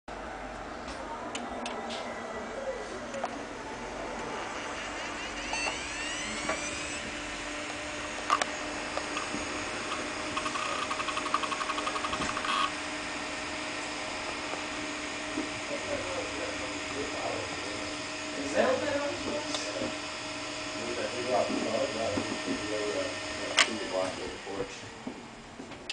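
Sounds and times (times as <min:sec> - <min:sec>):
hard disk spinning whine: 0:00.1 - 0:25.6
spindle motor hum: 0:00.1 - 0:25.9
drive head clicks and buzzing: 0:08.2 - 0:12.7.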